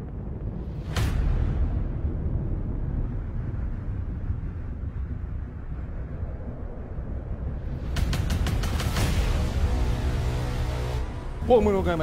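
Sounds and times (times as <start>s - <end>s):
low steady rumbling: 0.0s - 12.0s.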